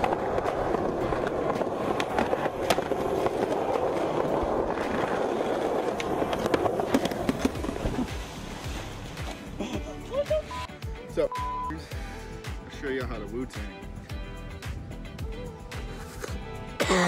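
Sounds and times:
skateboard clacks: 0.0 - 8.4
skateboard wheels rolling on concrete: 0.0 - 10.9, 12.0 - 16.8.

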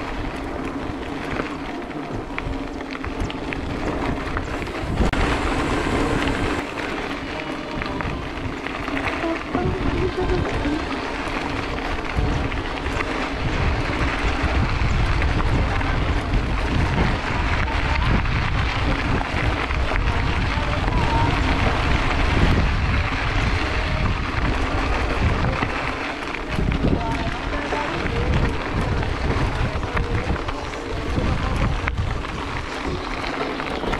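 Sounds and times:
bicycle tyres rolling on gravel: 0.0 - 33.9
bike rattles and clicks: 0.0 - 33.9
wind buffeting microphone: 0.0 - 33.9.

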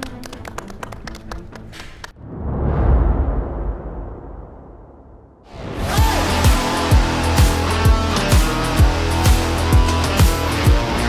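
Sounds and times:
people clapping: 0.0 - 2.2.

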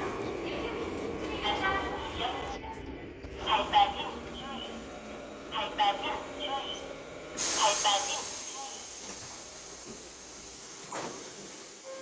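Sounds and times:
low hum of subway platform: 0.0 - 12.0.

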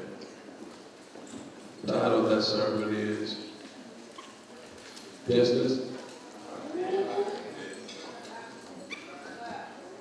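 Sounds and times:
faint voices in a hall: 0.0 - 10.0.

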